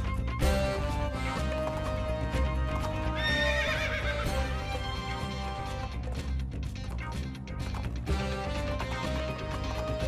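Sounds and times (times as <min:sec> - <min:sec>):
galloping hoofbeats: 0:00.0 - 0:10.0
music: 0:00.0 - 0:10.0
horse whinnying: 0:02.9 - 0:04.8.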